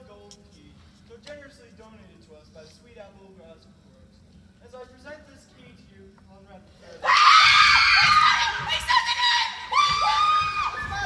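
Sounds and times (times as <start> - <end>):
girls screaming excitedly: 7.0 - 11.0.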